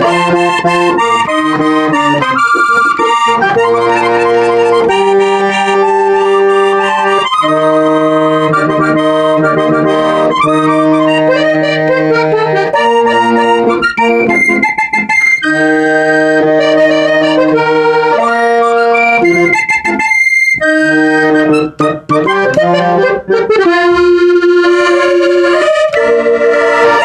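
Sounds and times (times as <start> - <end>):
button accordion melody: 0.0 - 27.0.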